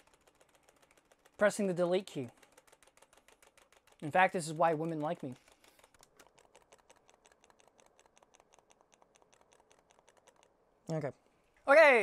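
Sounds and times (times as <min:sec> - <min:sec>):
keyboard key tapping: 0:00.0 - 0:10.6.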